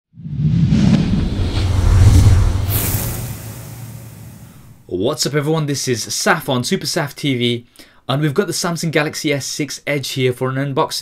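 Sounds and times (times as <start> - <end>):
deep bass rumble: 0.2 - 4.8
whoosh: 0.2 - 4.8.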